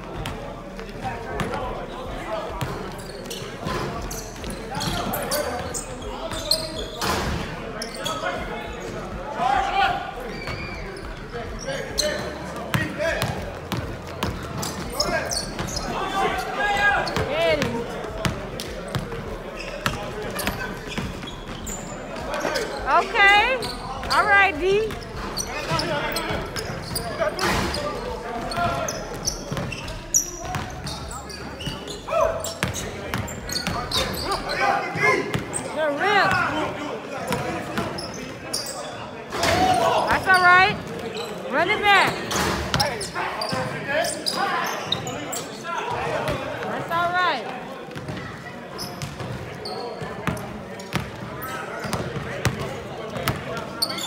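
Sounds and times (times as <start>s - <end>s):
sneakers squeaking: 0.0s - 54.0s.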